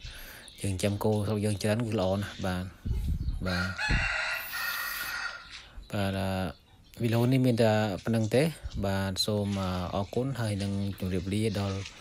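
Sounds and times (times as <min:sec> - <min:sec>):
rooster crowing: 0:03.5 - 0:05.5.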